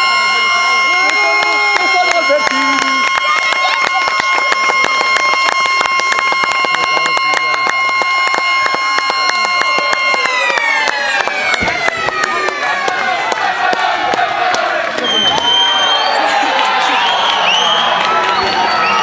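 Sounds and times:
loud chord horn tone: 0.0s - 10.8s.

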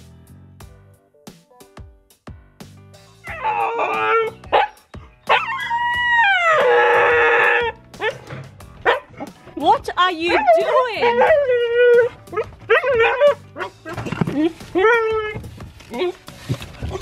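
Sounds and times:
puppy howling: 3.2s - 8.2s, 10.3s - 16.2s
puppy yelping: 10.3s - 16.2s.

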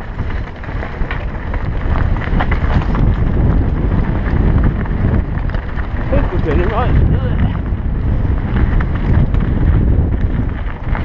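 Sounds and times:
bike knocks and rattles: 0.0s - 11.0s
low rumble of bike: 0.0s - 11.0s
wind buffeting microphone: 0.0s - 11.0s.

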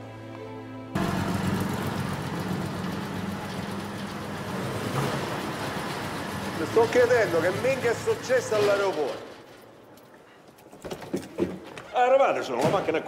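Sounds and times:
car engine running: 1.0s - 8.5s.

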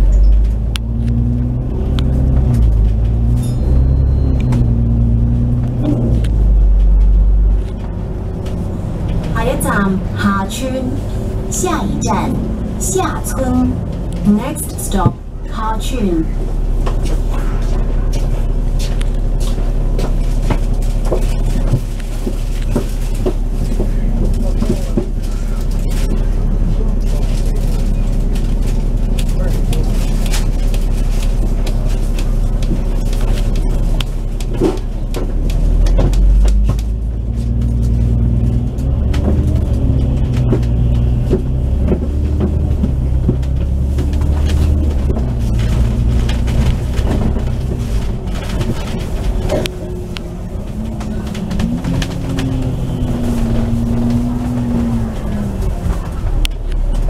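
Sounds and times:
bus engine hum and whine: 0.0s - 57.0s.

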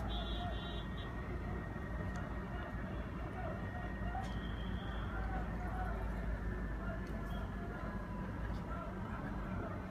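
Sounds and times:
fire engines idling rumble: 0.0s - 9.9s.

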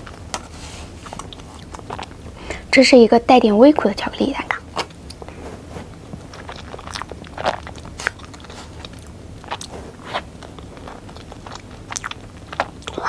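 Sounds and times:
person chewing cake: 0.0s - 2.7s, 4.4s - 13.0s
sticky mouth clicks: 6.2s - 13.0s.

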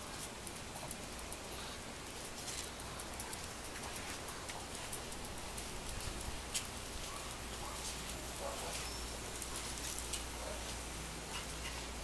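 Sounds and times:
dog claws ticking on concrete: 0.0s - 8.7s
steady background noise: 0.0s - 12.0s.

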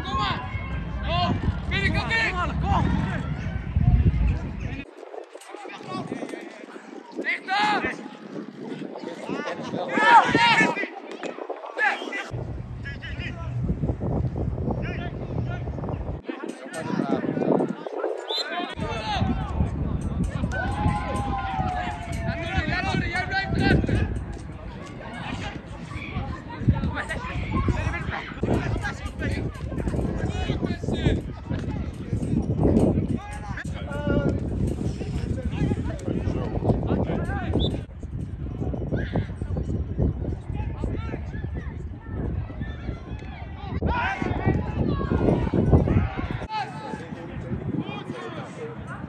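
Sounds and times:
steady low rumble: 0.0s - 4.8s, 12.3s - 16.2s
players calling and shouting: 0.0s - 37.9s, 42.7s - 49.0s
low thuds of running: 0.0s - 48.6s
people shouting calls: 9.9s - 11.1s, 20.2s - 31.3s, 43.7s - 49.0s.

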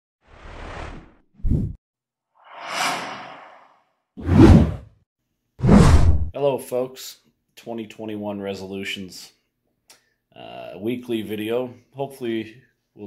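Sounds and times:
whoosh sound effects: 2.4s - 4.8s.

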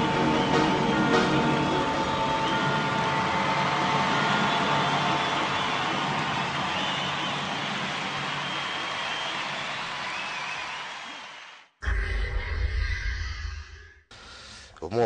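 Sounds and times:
audience applauding and cheering: 0.0s - 11.7s.

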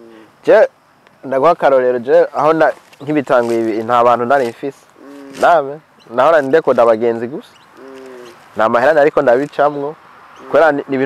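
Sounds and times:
man speaking: 0.0s - 7.5s, 8.1s - 11.0s
short low bird call: 5.0s - 5.5s, 7.6s - 8.5s.

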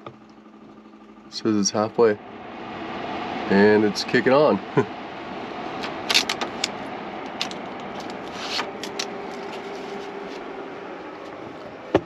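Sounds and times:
air conditioner fan blowing: 0.0s - 12.0s
handling scrapes and rustles: 7.4s - 10.6s
tape being peeled off: 7.9s - 10.5s.

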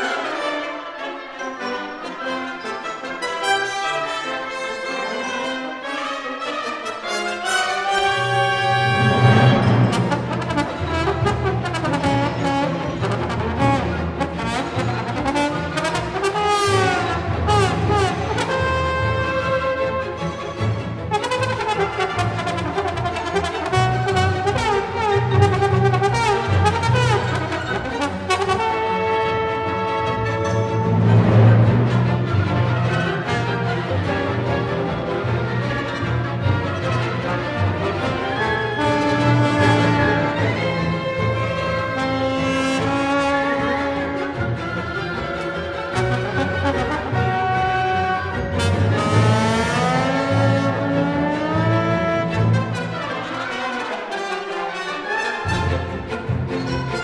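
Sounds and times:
symphony orchestra: 0.0s - 57.0s
solo trombone: 46.2s - 54.8s.

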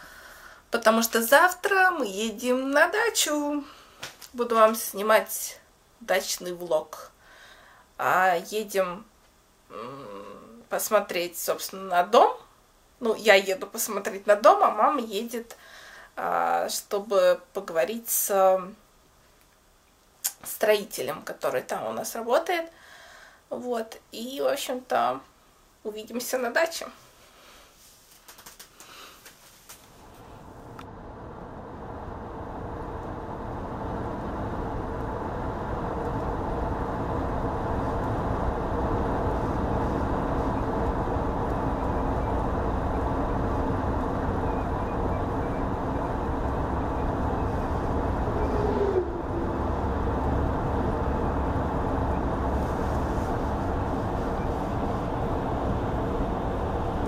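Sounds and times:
car road noise from inside cabin: 30.0s - 57.0s.

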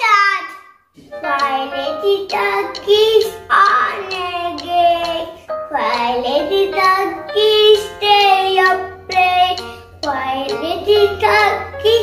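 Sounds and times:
girl singing: 0.3s - 12.0s
backing music: 1.0s - 12.0s.

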